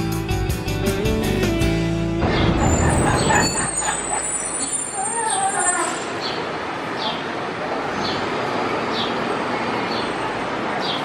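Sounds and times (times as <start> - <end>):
city street traffic: 0.0 - 11.0.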